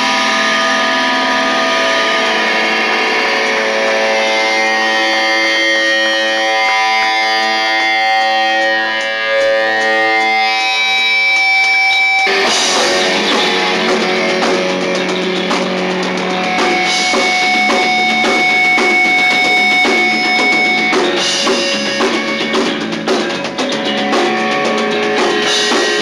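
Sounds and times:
distorted electric guitar: 0:00.0 - 0:26.0
high feedback tone: 0:00.0 - 0:26.0.

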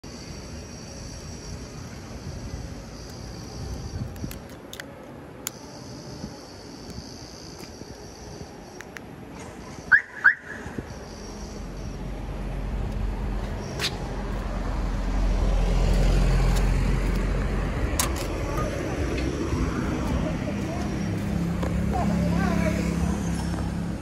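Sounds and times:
car alarm chirping: 0:09.7 - 0:12.0.

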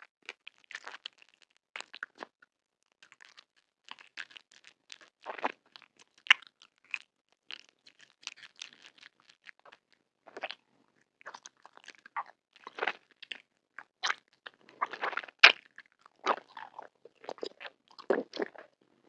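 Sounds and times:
mouth chewing candy: 0:00.1 - 0:19.0.

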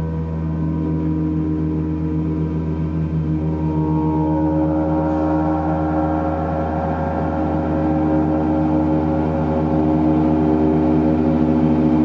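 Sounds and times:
higher ringing tone: 0:00.0 - 0:12.0
large gongs ringing: 0:00.0 - 0:12.0
low pulsing beat: 0:00.0 - 0:12.0.

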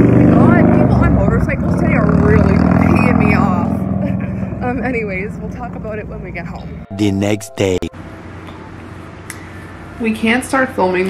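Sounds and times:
vehicle engine running: 0:00.0 - 0:06.9
voices: 0:00.0 - 0:08.0.

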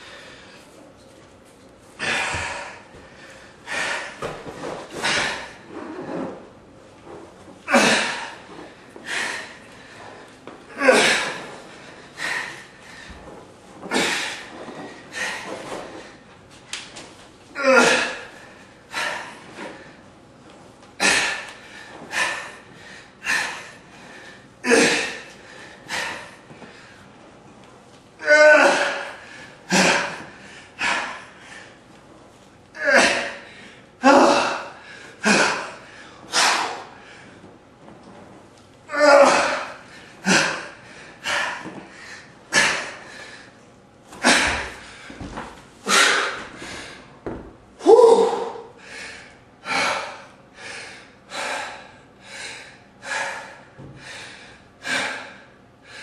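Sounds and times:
person breathing hard: 0:00.0 - 0:00.8, 0:02.0 - 0:05.7, 0:07.7 - 0:13.3, 0:17.6 - 0:20.1, 0:21.0 - 0:27.1, 0:28.6 - 0:31.8, 0:32.8 - 0:37.4, 0:39.4 - 0:43.6, 0:44.2 - 0:47.1, 0:47.8 - 0:56.0
man panting heavily: 0:02.0 - 0:05.7, 0:09.0 - 0:13.2, 0:13.9 - 0:16.2, 0:17.6 - 0:20.0, 0:21.0 - 0:27.0, 0:28.6 - 0:31.8, 0:32.8 - 0:37.3, 0:39.3 - 0:43.6, 0:45.8 - 0:47.1, 0:47.9 - 0:56.0.

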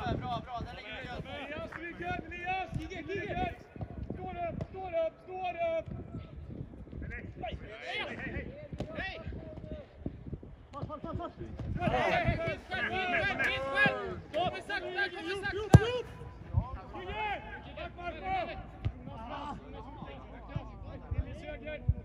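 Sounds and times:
footballers shouting: 0:10.8 - 0:21.9
football being kicked: 0:15.6 - 0:16.6.

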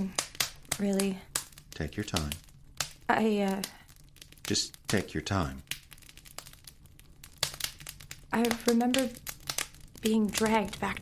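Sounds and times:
soft crackling and clicking: 0:00.0 - 0:11.0.

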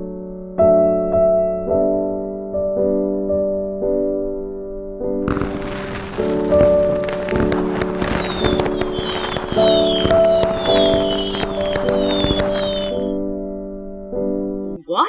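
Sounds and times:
soft piano music: 0:00.0 - 0:14.8
crackling and popping fireworks: 0:05.3 - 0:13.2
short falling high whistles: 0:05.6 - 0:13.2.

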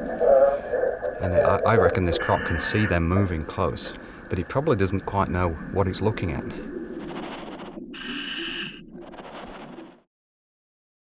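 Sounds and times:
low underwater background noise: 0:00.0 - 0:10.0
diving regulator hissing: 0:07.0 - 0:09.9.

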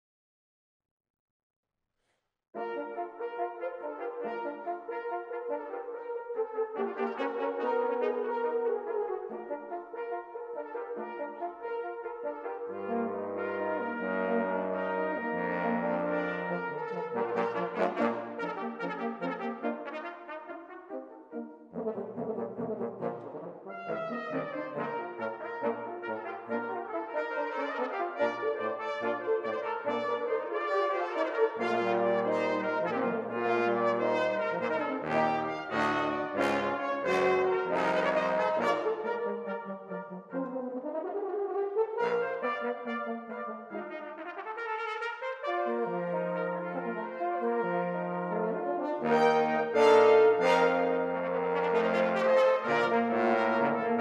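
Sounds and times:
brass quintet playing: 0:02.6 - 0:54.0.

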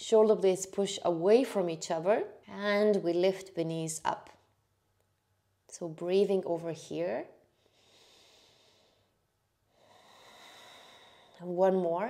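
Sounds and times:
faint breathing: 0:07.4 - 0:11.4.

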